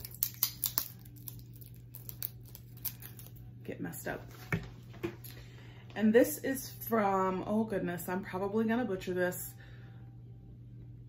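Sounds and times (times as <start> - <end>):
plastic tape peeling and crinkling: 0.0 - 3.4.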